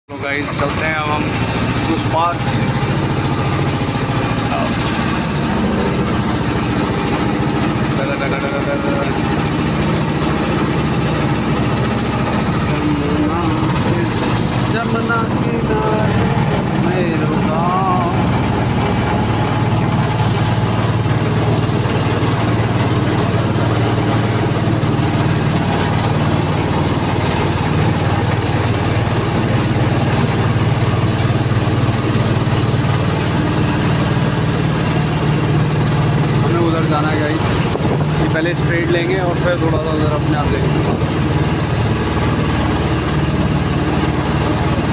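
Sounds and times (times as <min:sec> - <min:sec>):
motor boat engine running: 0:00.1 - 0:44.9.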